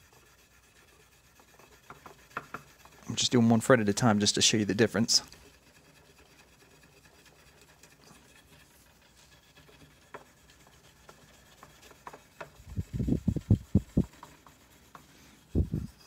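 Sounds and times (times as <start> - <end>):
steel wool rubbing on metal: 0.0 - 16.0.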